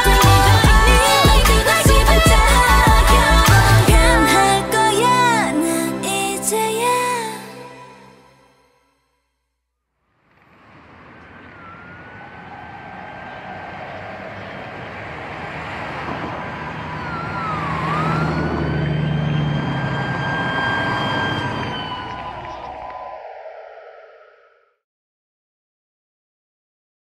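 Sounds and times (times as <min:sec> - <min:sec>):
wailing siren-like tones: 0:00.0 - 0:05.4, 0:10.2 - 0:24.8.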